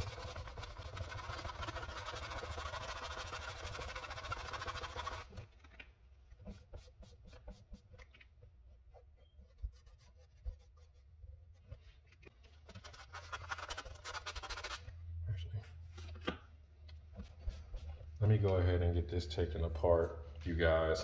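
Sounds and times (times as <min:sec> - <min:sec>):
sandpaper scratching plastic: 0:00.0 - 0:05.7, 0:06.3 - 0:08.2, 0:12.6 - 0:14.9.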